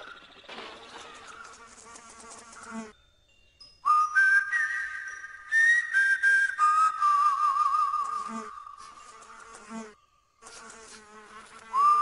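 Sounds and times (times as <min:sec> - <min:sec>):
high whistle-like melody: 0:03.6 - 0:08.3, 0:11.7 - 0:12.0.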